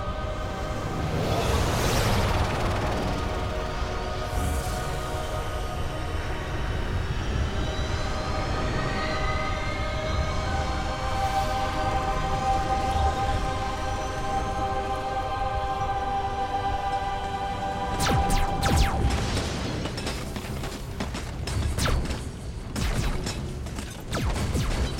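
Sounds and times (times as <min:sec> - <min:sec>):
dark drone chords: 0:00.0 - 0:19.8.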